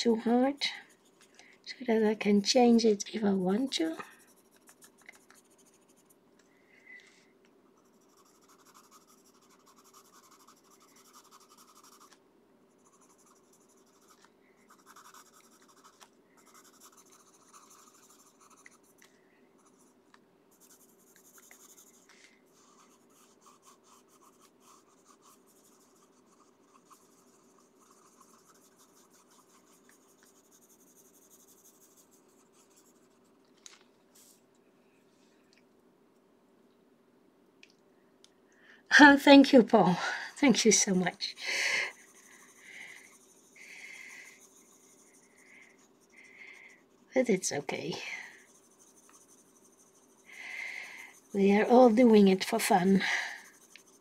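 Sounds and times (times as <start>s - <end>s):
pencil scratching on paper: 0.0s - 1.2s, 2.5s - 6.2s, 7.8s - 33.2s, 40.4s - 54.0s
faint steady hum: 0.0s - 54.0s.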